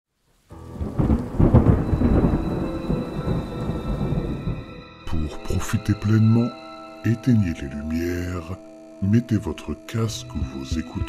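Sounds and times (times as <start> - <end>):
steady rain: 0.2 - 4.8
thunder rumbling: 0.5 - 4.8.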